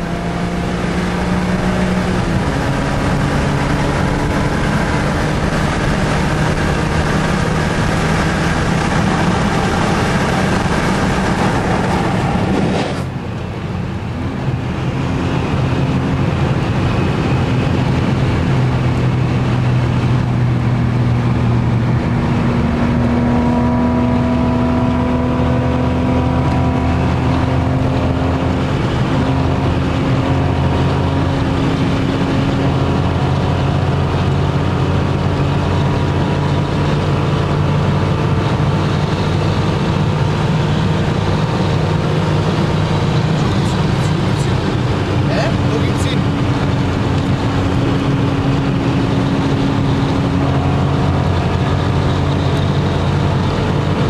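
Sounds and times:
car engine from inside cabin: 0:00.0 - 0:54.0
road and wind noise: 0:00.0 - 0:54.0.

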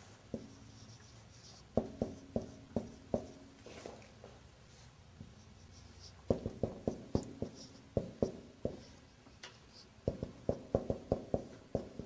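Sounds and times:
marker tapping on whiteboard: 0:01.8 - 0:03.4, 0:06.2 - 0:08.9, 0:10.0 - 0:12.0.

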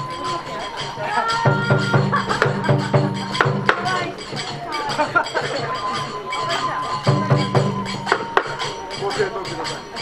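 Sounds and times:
flute and drum music: 0:00.0 - 0:10.0.

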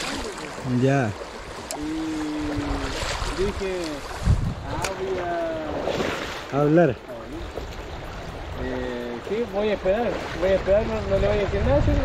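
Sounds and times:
wind buffeting microphone: 0:00.0 - 0:06.3, 0:07.3 - 0:12.0
river running over stones: 0:00.0 - 0:11.2.

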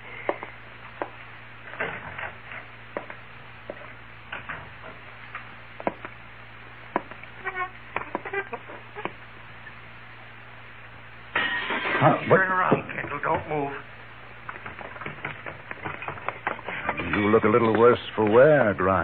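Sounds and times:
footsteps: 0:00.0 - 0:06.2, 0:14.4 - 0:18.9
low hum: 0:00.0 - 0:19.0
short creaks: 0:07.3 - 0:09.8.

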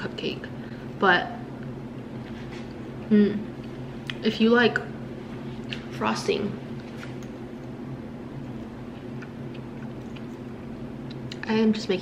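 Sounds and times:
low room tone hum: 0:00.0 - 0:12.0.

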